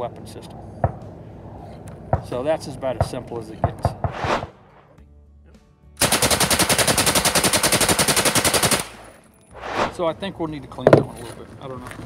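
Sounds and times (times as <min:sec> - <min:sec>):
submachine gun full-auto burst: 0:06.0 - 0:09.1.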